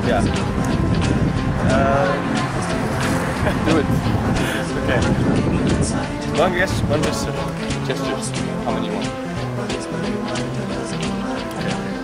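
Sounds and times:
steady low rumble: 0:00.0 - 0:11.4
man speaking: 0:01.6 - 0:03.9, 0:06.3 - 0:09.1
young man laughing: 0:03.0 - 0:05.2.

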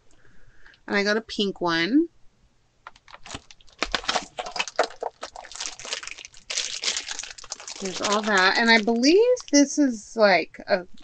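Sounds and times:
packaging crackling rustles: 0:02.8 - 0:09.6.

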